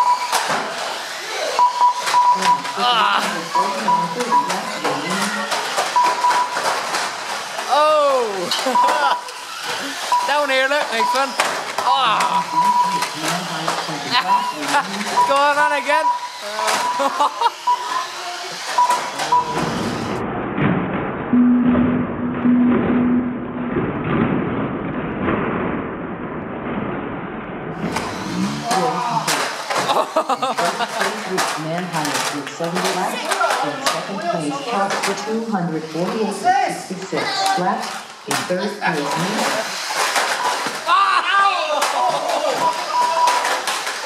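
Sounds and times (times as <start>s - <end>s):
toy cars clattering and knocking: 0.1s - 1.3s, 2.0s - 7.8s, 8.4s - 19.8s, 27.8s - 36.4s, 37.2s - 40.9s, 41.8s - 44.0s
chatter of voices: 1.0s - 6.2s, 7.6s - 20.2s, 27.9s - 44.0s.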